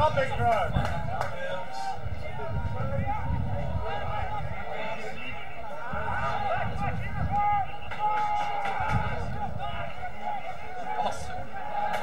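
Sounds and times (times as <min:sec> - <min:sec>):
wind rumble on microphone: 0:00.0 - 0:10.1
voices calling and shouting: 0:00.0 - 0:12.0.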